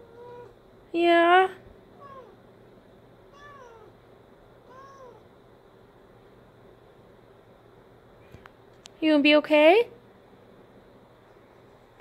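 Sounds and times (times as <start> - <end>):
cat meowing softly: 0.0 - 0.6, 2.0 - 2.4, 3.3 - 4.0, 4.6 - 5.3.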